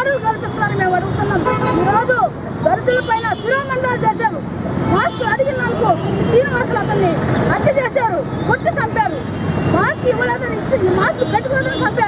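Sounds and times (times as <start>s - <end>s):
street and crowd noise: 0.0s - 12.0s
woman speaking forcefully: 0.0s - 12.0s.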